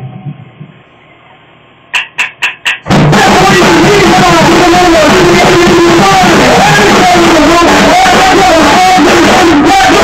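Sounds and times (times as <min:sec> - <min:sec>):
punk band playing live: 0:02.0 - 0:10.0.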